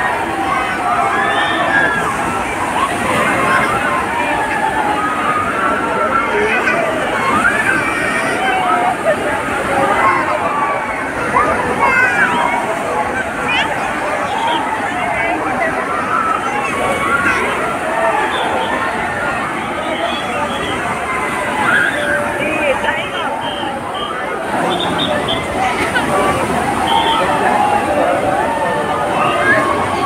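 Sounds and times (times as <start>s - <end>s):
crowd chattering and shouting: 0.0s - 30.0s
waves washing and splashing: 0.0s - 30.0s.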